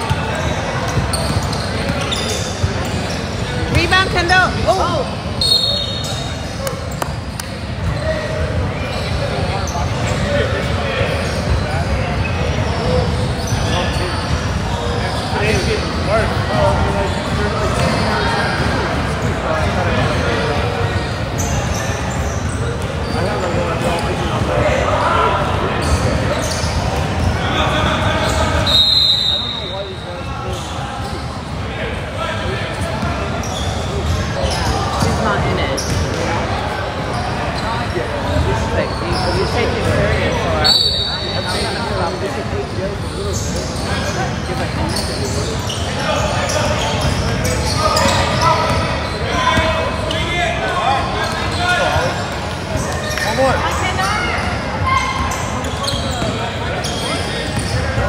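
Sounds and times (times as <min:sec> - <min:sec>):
echoing indistinct voices: 0:00.0 - 0:05.4.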